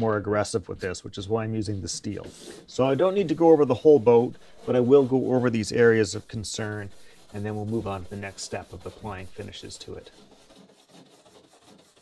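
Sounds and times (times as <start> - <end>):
wire brush scrubbing wood: 0.8 - 12.0.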